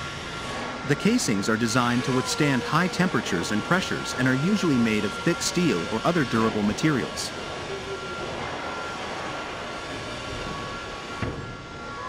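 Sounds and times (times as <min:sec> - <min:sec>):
factory mechanical hum: 0:00.0 - 0:12.0.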